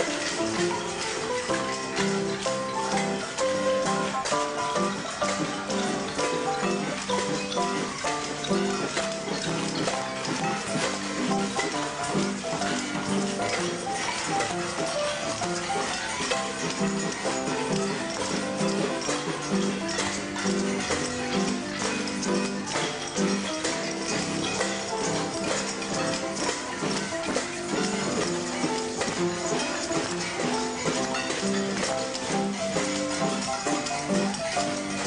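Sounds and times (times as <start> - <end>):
small live band playing: 0.0 - 35.0.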